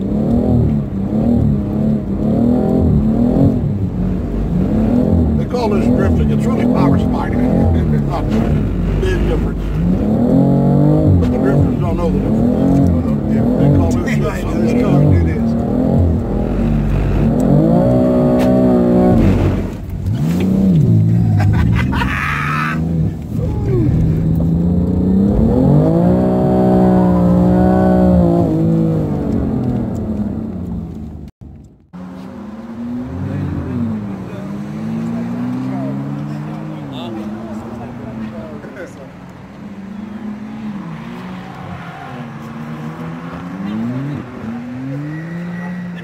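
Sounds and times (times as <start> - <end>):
car engine outside: 0.0 - 46.0
car engine revving: 0.0 - 46.0.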